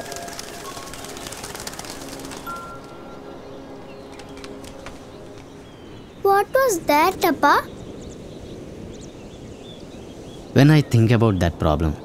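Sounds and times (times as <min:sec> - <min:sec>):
birds calling: 0:00.0 - 0:12.0.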